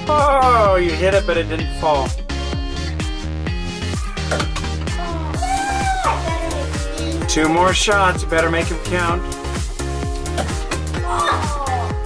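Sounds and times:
upbeat dance music: 0.0 - 12.0.

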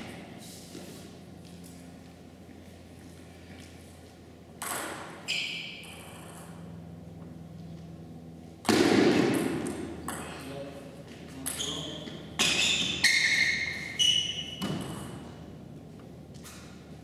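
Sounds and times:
table tennis ball bouncing: 4.6 - 5.2, 8.7 - 10.4.

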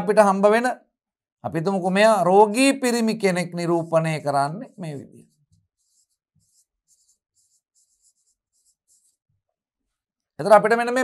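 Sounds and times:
pen scratching on board: 4.6 - 9.3.

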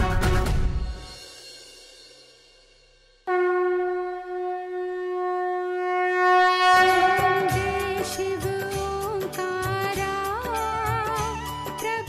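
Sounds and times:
background music: 0.0 - 1.7, 6.5 - 12.0
conch shell blown: 3.3 - 9.4
devotional music: 6.6 - 12.0.

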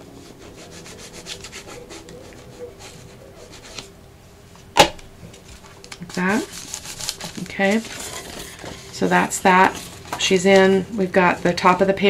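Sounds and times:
paper and card rustling: 0.0 - 3.9, 5.2 - 12.0.

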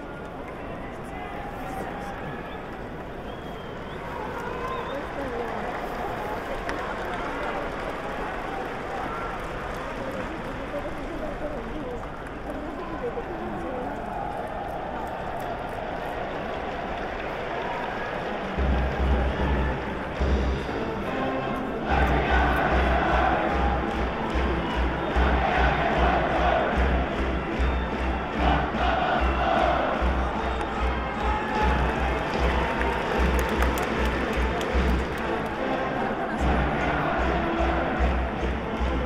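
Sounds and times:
crowd: 0.0 - 39.0.

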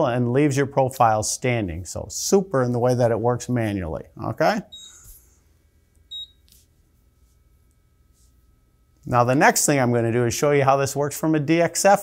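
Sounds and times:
faint electronic whine: 0.0 - 12.0
short high beep: 4.7 - 5.2, 6.1 - 6.4.

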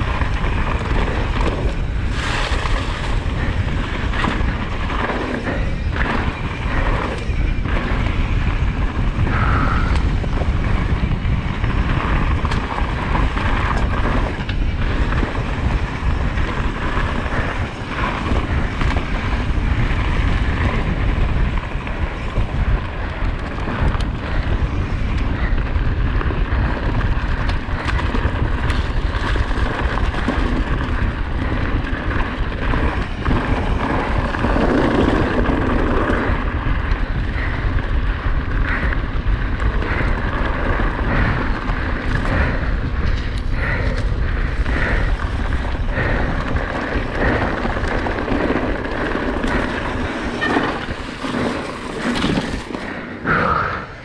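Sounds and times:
bike clicks and rattles: 0.0 - 54.0
bike tyres on dirt trail: 0.0 - 54.0
wind rushing over microphone: 0.0 - 54.0.

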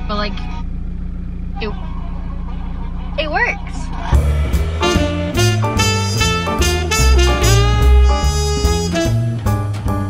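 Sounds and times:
low hum inside car: 0.0 - 8.6
music from car stereo: 2.0 - 10.0.

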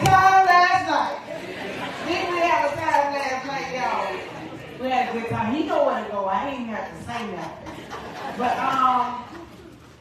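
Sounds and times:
woman talking into a microphone: 0.0 - 1.3, 2.0 - 7.7, 8.3 - 9.4.

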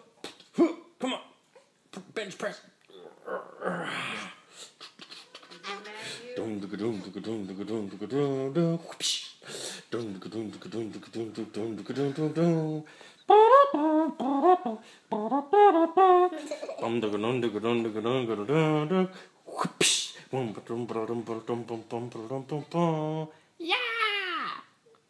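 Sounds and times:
man vocalizing rhythmically: 0.0 - 1.3, 2.9 - 23.4.

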